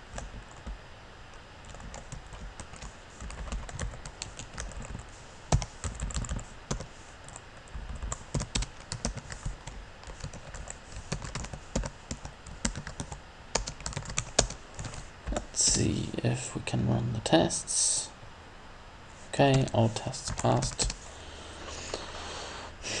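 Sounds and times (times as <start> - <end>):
computer keyboard typing: 0.0 - 0.8, 1.6 - 15.5, 19.4 - 21.0.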